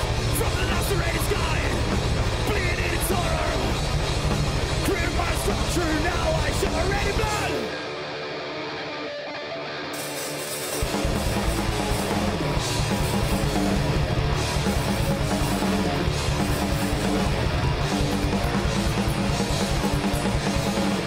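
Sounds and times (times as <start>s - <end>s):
distorted electric guitar: 0.0s - 21.0s
live heavy metal band: 0.0s - 21.0s.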